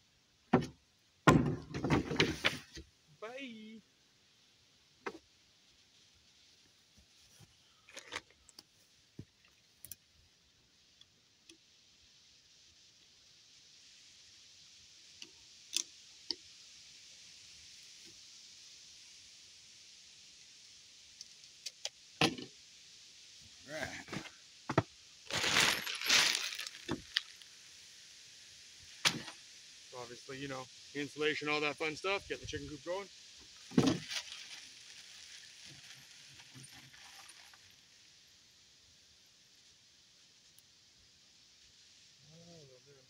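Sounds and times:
soft hiss: 0.0s - 43.0s.

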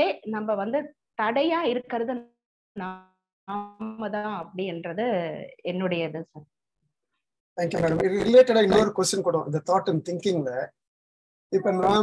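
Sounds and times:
person speaking: 11.6s - 12.0s.

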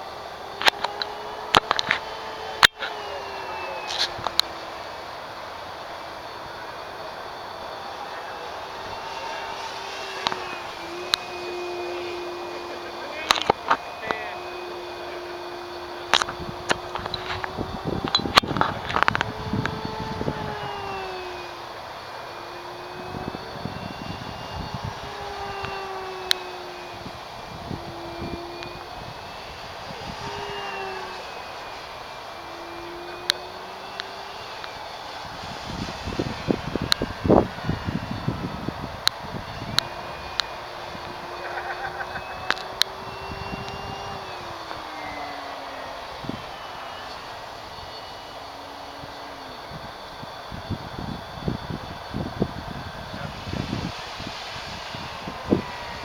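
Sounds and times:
model plane motor whine: 0.0s - 56.0s
wind buffeting microphone: 0.0s - 56.0s
sharp clicks: 0.5s - 4.8s.

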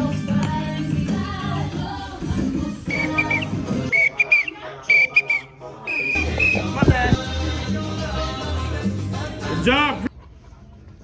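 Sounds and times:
upbeat latin-style music: 0.0s - 10.1s
shrill whistle bursts: 2.9s - 7.2s.

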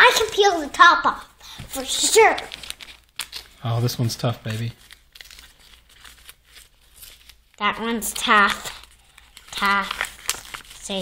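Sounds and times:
paper envelope crinkling: 1.8s - 11.0s.

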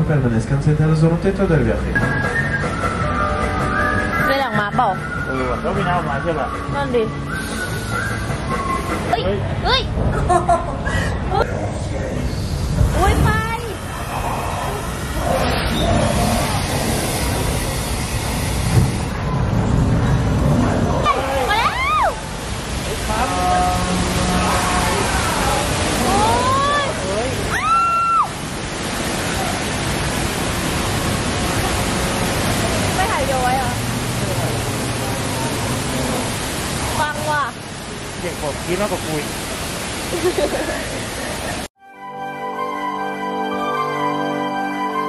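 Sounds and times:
rumbling rushing noise: 7.2s - 27.6s
water gushing down rocks: 11.8s - 41.7s.

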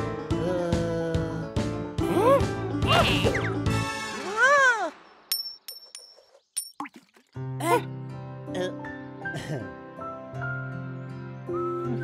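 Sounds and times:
coin clinking metallic pings: 5.3s - 6.7s.

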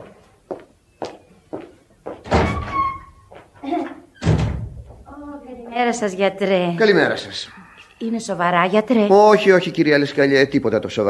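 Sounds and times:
door closing with heavy thump: 2.2s - 3.0s, 4.2s - 5.0s
door knocks and clicks: 4.2s - 4.8s.

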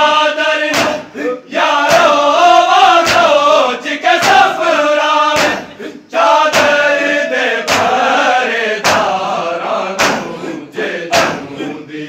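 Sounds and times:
men chanting in unison: 0.0s - 12.0s
hands striking chests: 5.3s - 5.8s, 7.7s - 8.0s, 10.0s - 10.4s.

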